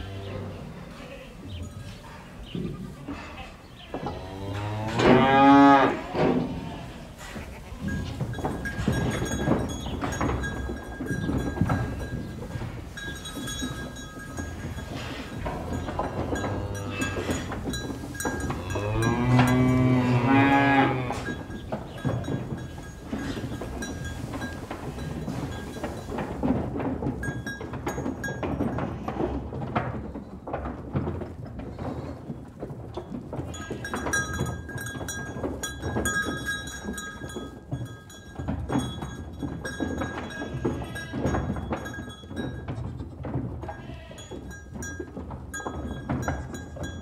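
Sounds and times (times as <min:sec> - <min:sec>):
cattle mooing: 0:04.1 - 0:07.4, 0:15.0 - 0:17.6, 0:18.6 - 0:21.4.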